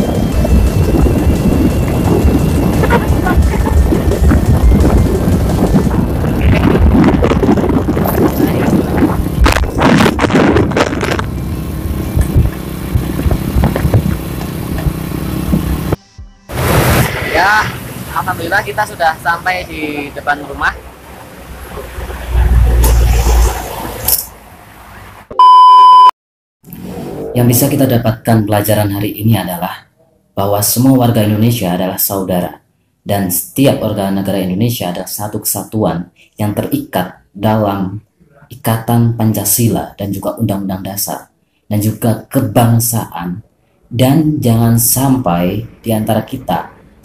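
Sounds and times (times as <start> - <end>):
wind buffeting microphone: 0.0 - 16.0
motorcycle engine: 0.0 - 16.7
low rumble of street noise: 0.0 - 25.3, 26.7 - 47.0
road noise: 0.0 - 25.6, 26.6 - 28.0, 41.2 - 47.0
steady electronic beep: 25.3 - 26.1.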